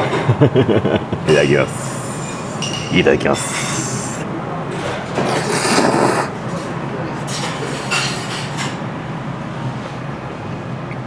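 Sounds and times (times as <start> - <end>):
steady background hum: 0.0 - 11.0
person slurping noodles: 5.2 - 6.4.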